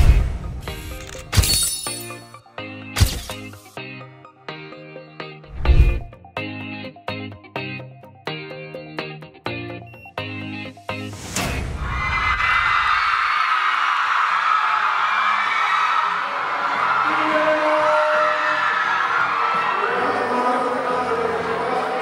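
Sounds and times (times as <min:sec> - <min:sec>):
background music: 0:00.0 - 0:12.1, 0:16.6 - 0:22.0
crowd screaming and cheering: 0:11.6 - 0:22.0.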